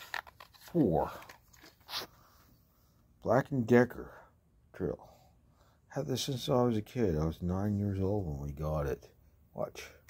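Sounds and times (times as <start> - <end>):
person speaking: 0.0 - 2.0, 5.9 - 10.0.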